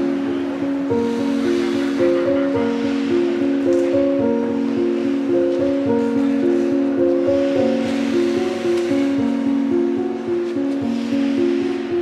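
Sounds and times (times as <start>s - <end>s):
background music with held notes: 0.0s - 12.0s
steady hiss: 0.0s - 12.0s.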